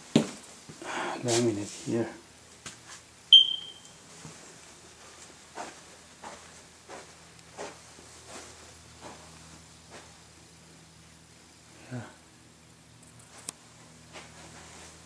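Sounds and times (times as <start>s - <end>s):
high electronic beep: 3.3s - 3.9s
soft footsteps on floor: 5.0s - 10.1s.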